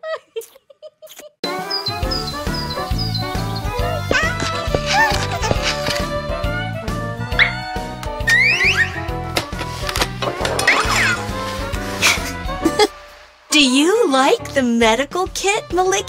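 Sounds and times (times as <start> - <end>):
upbeat children's music: 1.4 - 16.0.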